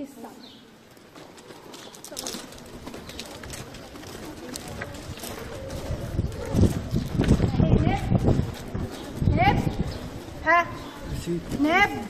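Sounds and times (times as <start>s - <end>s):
footsteps on stone floor: 0.3s - 12.0s
faint indistinct voices: 1.6s - 12.0s.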